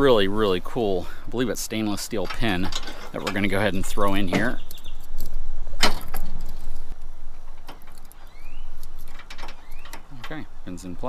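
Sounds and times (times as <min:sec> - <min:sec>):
low steady rumble: 0:00.0 - 0:11.0
metal pin scraping: 0:02.0 - 0:10.6.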